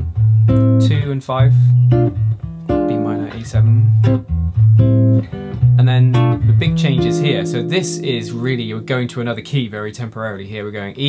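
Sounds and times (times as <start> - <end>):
clean jazz guitar chords: 0.0 - 10.0.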